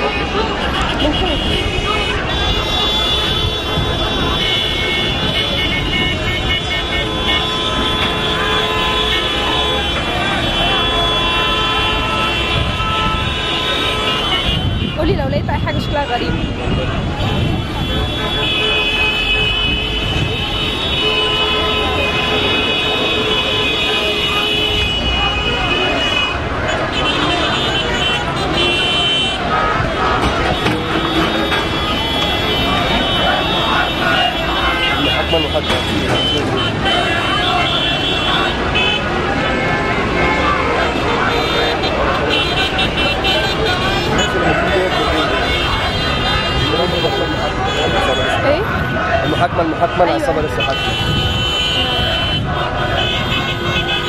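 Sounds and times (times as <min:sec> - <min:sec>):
many voices: 0:00.0 - 0:54.0
street traffic: 0:00.0 - 0:54.0
vehicle horns blasting: 0:00.0 - 0:54.0.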